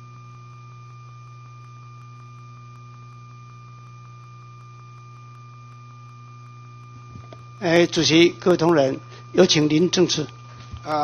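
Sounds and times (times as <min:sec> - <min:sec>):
electrical hum with high whine: 0:00.0 - 0:11.0.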